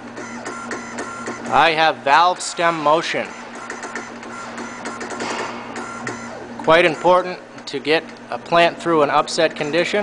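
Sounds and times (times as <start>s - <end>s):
valve actuator motor whining: 0.0s - 8.3s
steady electrical hum: 0.0s - 10.0s.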